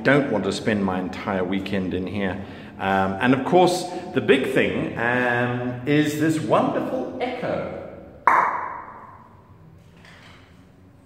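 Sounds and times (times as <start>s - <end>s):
sharp percussive hit with echo: 8.2s - 9.6s.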